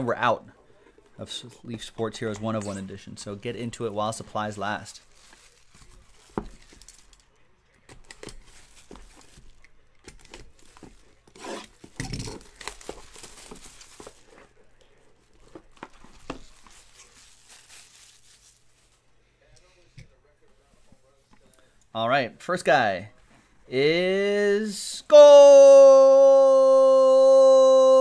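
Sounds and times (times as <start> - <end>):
plastic shrink-wrap tearing and crinkling: 4.9 - 7.3, 11.7 - 14.3, 15.7 - 19.0
cardboard boxes handled and opened: 5.2 - 7.1, 8.0 - 14.6, 15.2 - 17.2.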